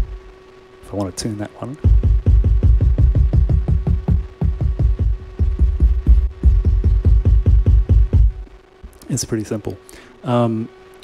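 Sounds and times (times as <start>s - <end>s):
low drum sample repeating rapidly: 1.7s - 9.0s.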